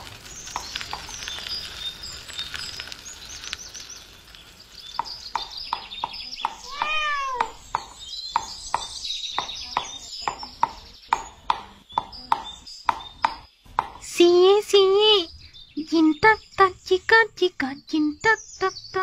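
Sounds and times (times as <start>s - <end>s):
small birds chirping: 0.0s - 19.0s
cat meowing: 6.6s - 7.6s.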